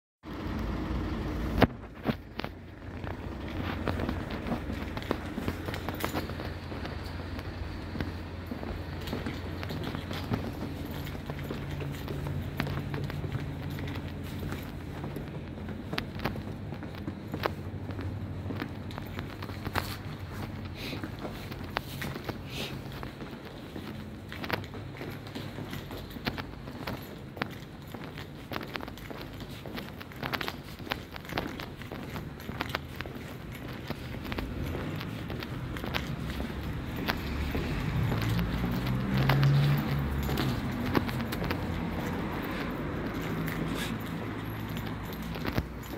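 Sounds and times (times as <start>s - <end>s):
street traffic rumble: 0.2s - 45.9s
footsteps on brick paving: 0.3s - 45.9s.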